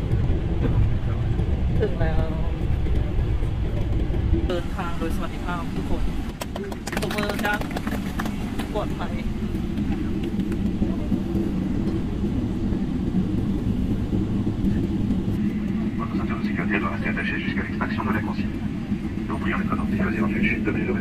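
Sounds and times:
jet engine cabin rumble: 0.0 - 21.0.

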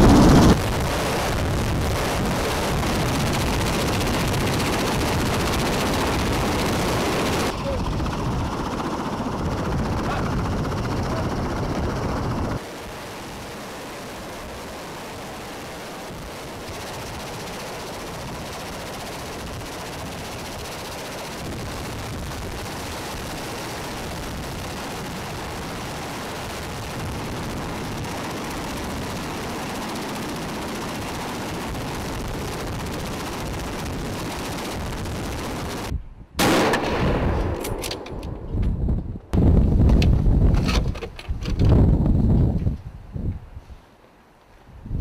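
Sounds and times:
heavy rotor noise: 0.0 - 35.9.

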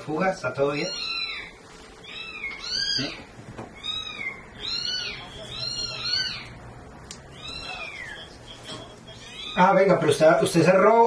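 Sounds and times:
high-pitched animal calls: 0.6 - 6.6, 7.3 - 9.9.

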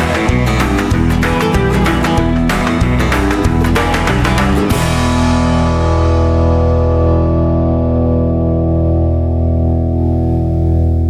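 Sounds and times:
band chord ringing out: 0.0 - 11.0.

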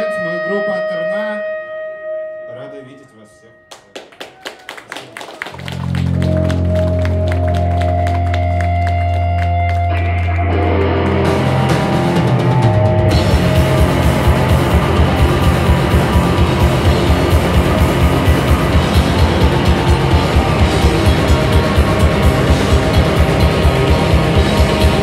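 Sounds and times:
electric guitar: 5.2 - 25.0
drum kit: 5.8 - 25.0.

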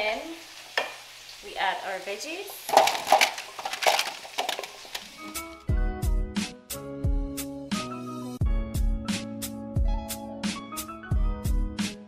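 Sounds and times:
vegetables clinking into metal pan: 2.3 - 5.6.

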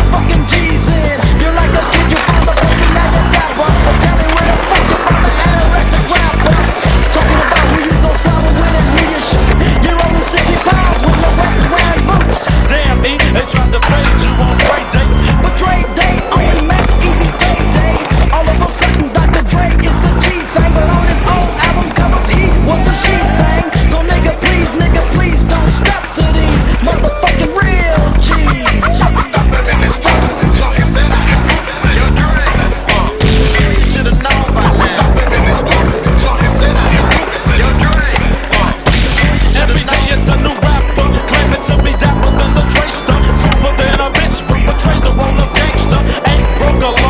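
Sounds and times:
music with heavy bass line: 0.0 - 47.0
skateboard knocking on concrete curb: 0.1 - 47.0.

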